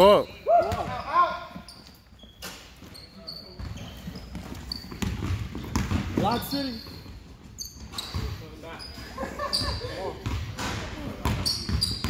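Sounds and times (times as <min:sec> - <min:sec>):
sneaker squeaks: 0:00.0 - 0:12.0
basketball bouncing on hardwood floor: 0:03.6 - 0:06.2, 0:10.2 - 0:10.5.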